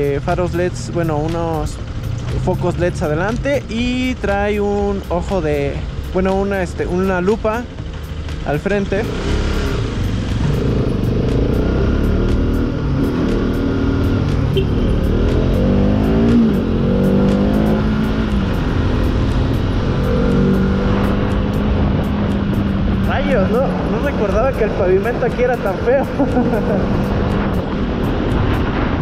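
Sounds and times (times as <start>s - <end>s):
motorcycle engine accelerating: 0.0s - 29.0s
wind rush on microphone: 26.6s - 29.0s.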